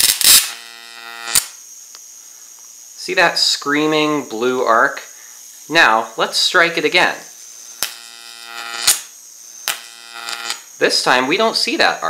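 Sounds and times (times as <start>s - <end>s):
sharp arc snap: 0.0s - 0.6s, 1.2s - 2.0s, 7.8s - 10.7s
electric arc buzzing: 0.0s - 12.0s.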